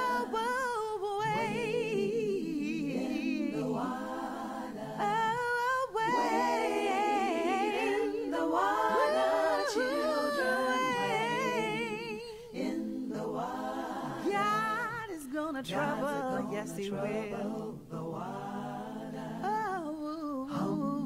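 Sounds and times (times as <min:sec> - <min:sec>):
voices singing a cappella: 0:00.0 - 0:21.0.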